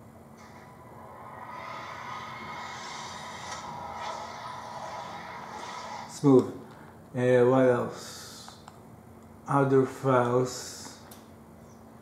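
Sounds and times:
film soundtrack from tv speakers: 0.0s - 7.2s.

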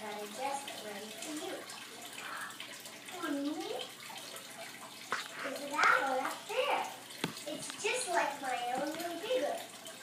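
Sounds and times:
girls talking on tv: 0.0s - 4.1s, 5.1s - 9.8s.

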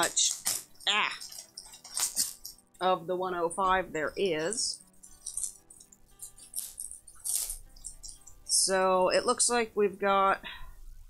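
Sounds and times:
cellophane crinkling: 0.0s - 2.6s, 5.0s - 8.3s.

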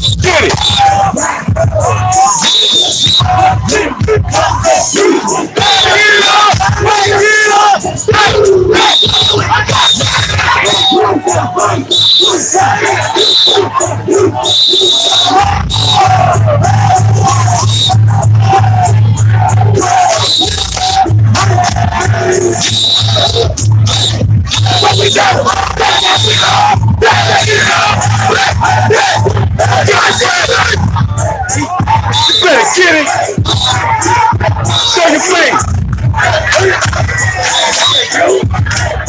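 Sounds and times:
high whistle blasts: 0.0s - 0.9s, 2.3s - 3.3s, 8.8s - 11.0s, 11.9s - 12.4s, 13.1s - 13.6s, 14.4s - 16.0s, 17.5s - 18.0s, 20.1s - 21.0s, 22.6s - 25.2s, 25.8s - 26.6s, 32.1s - 32.7s, 33.4s - 33.8s
heavy bass beat: 0.0s - 39.0s
loud hip hop music: 0.0s - 39.0s
men chanting and yelling: 0.0s - 39.0s.

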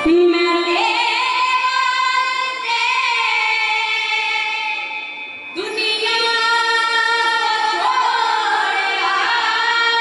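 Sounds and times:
children and woman singing: 5.6s - 10.0s.

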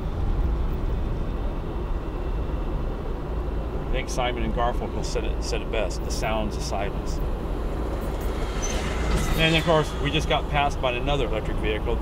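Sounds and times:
train passing rumble: 0.0s - 12.0s
car tyre and wind noise: 6.5s - 12.0s
faint high squeal: 7.9s - 11.4s.

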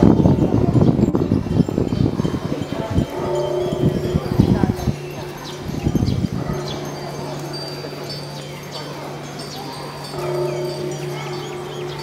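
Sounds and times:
wind bells tinkling: 0.0s - 12.0s.

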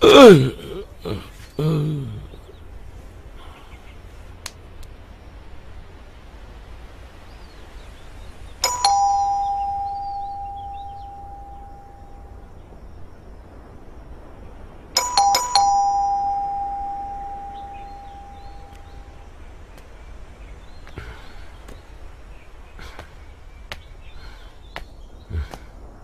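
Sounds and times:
doorbell chiming ding-dong: 8.6s - 12.1s, 15.0s - 18.6s.

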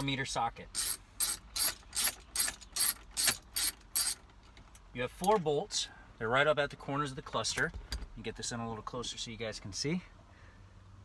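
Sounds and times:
hand ratchet clicking: 0.8s - 4.2s.

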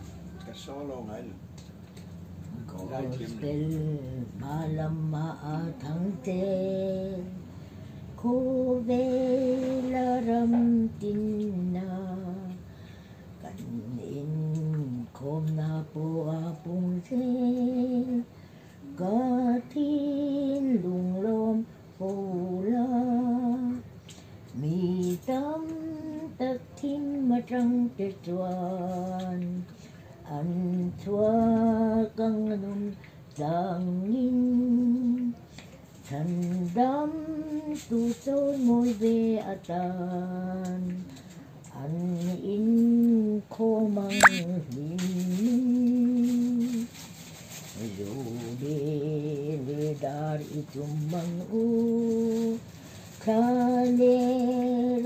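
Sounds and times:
elderly woman singing a hymn: 2.6s - 55.0s
sharp rising squeak: 44.1s - 44.4s.

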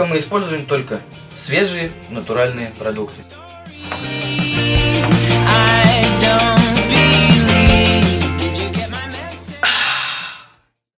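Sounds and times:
music: 0.0s - 10.9s
breathy satisfied exhale: 9.6s - 10.6s.

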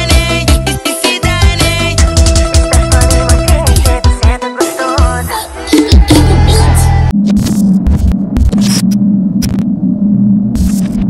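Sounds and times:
low electronic hum: 6.2s - 11.0s
glitchy clicks: 7.1s - 9.7s, 10.5s - 11.0s.

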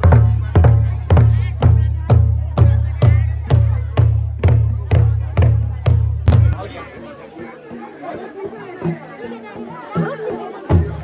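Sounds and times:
crowd chattering: 0.0s - 11.0s
deep drum beats: 0.0s - 11.0s.

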